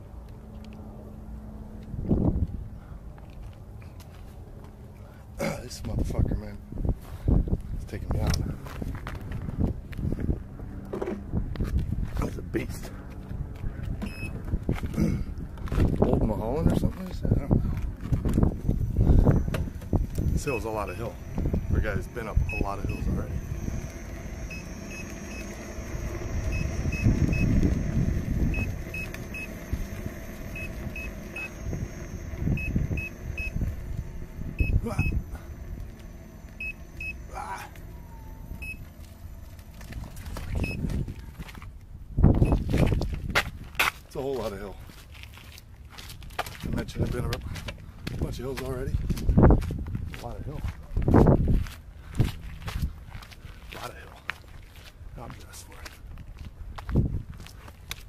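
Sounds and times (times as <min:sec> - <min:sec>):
wind and road rumble: 0:00.0 - 0:58.0
wind gusts buffeting microphone: 0:13.4 - 0:38.7
short electronic warning beeps: 0:14.0 - 0:14.4, 0:19.0 - 0:41.1, 0:42.4 - 0:42.7.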